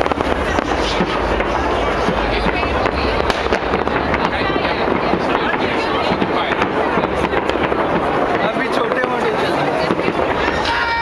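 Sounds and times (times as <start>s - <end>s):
fireworks crackling and banging: 0.0s - 11.0s
people talking: 0.0s - 11.0s.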